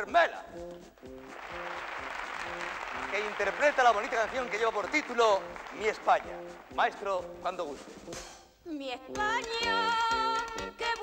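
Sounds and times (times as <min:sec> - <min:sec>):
brass band sustained notes: 0:01.0 - 0:08.2
audience applause: 0:01.2 - 0:07.4.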